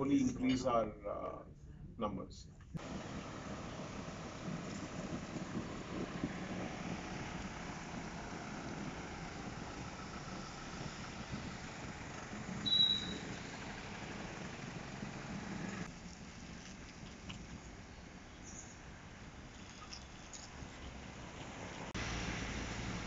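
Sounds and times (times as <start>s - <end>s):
diesel truck engine at low revs: 2.8s - 23.0s.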